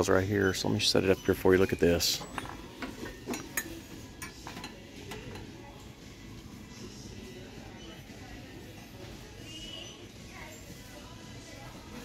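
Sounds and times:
low store background: 0.0 - 12.0.

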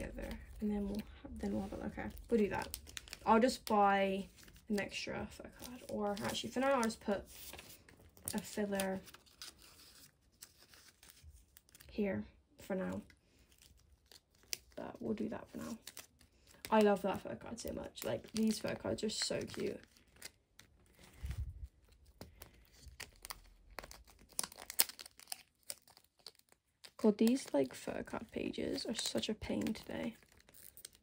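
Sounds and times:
plastic sleeves crinkling: 0.0 - 31.0.

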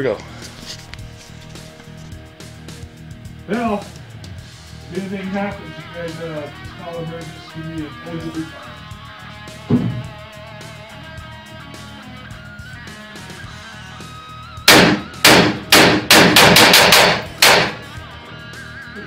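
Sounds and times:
rifle shots: 14.7 - 17.8.

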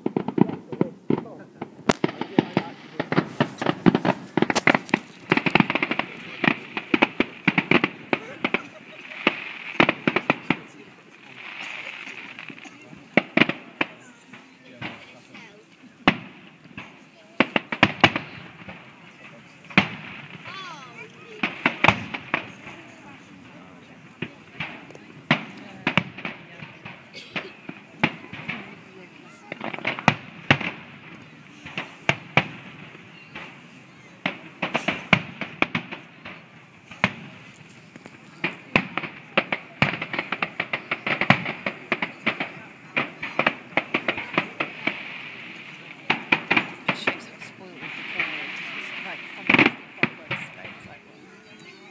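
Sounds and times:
fireworks bursting: 0.0 - 51.9.

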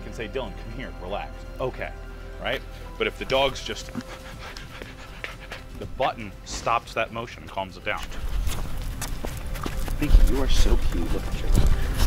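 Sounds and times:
dog panting: 3.0 - 6.8.

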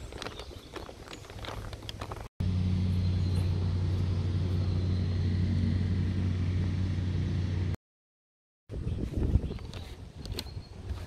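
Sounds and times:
low mechanical hum: 2.4 - 7.8.

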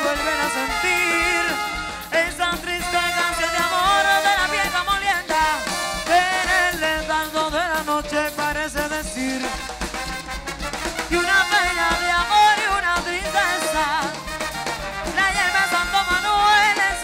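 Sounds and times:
latin band playing dance music: 0.0 - 17.0.

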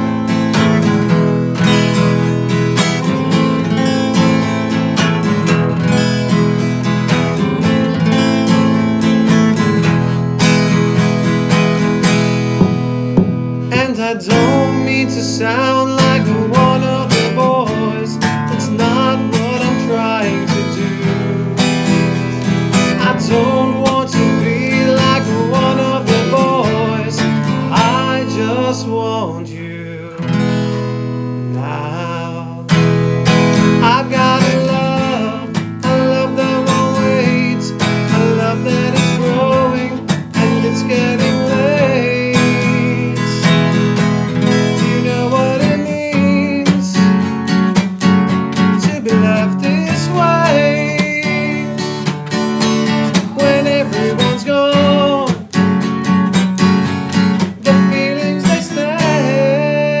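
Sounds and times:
acoustic guitar strumming: 0.0 - 60.0
man singing: 12.6 - 60.0.

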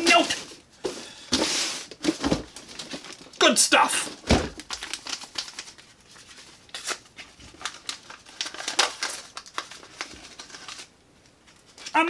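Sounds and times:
paper wrapping rustling: 0.0 - 3.4, 4.0 - 12.0.

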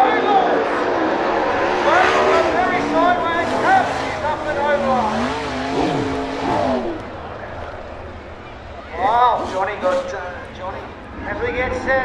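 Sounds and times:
distant race car engines: 0.0 - 12.0.

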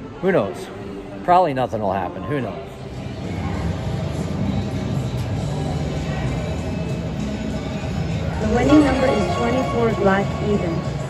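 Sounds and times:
roulette machine music: 8.4 - 11.0.

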